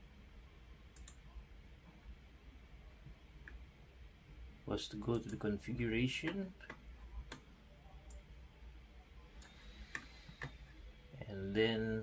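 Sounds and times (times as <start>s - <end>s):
computer mouse clicks: 0.9s - 1.2s, 9.4s - 10.6s.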